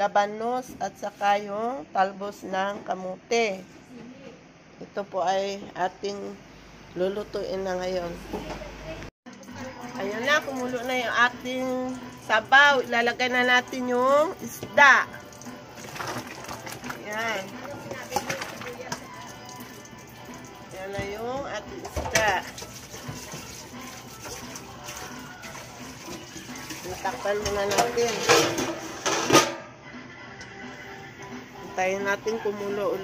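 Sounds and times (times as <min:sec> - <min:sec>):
soft background music: 0:09.0 - 0:33.0
broth boiling and bubbling: 0:14.8 - 0:27.4
pot lid clank: 0:27.7 - 0:29.7.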